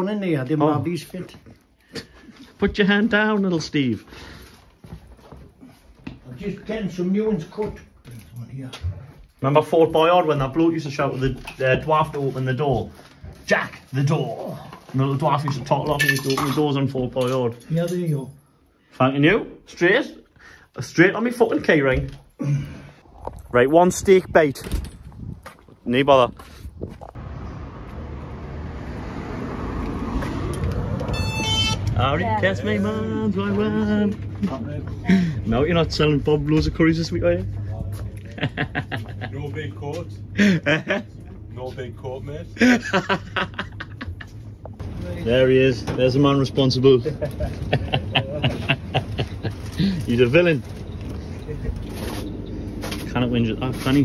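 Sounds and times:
footsteps on laminate floor: 4.7s - 6.3s
road traffic: 25.9s - 40.4s, 42.4s - 54.0s
two-note electronic door chime: 31.1s - 32.1s.

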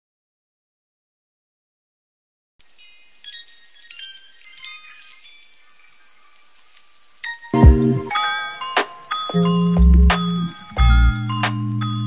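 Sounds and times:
faint hiss: 2.6s - 12.0s
high bell-like chime tones: 7.3s - 12.0s.

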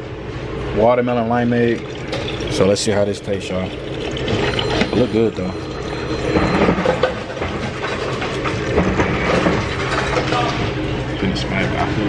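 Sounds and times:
restaurant background rumble: 0.0s - 12.0s.

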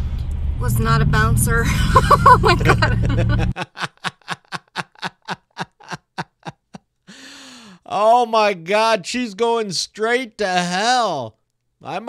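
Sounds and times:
person laughing in breathy bursts: 1.7s - 7.8s.

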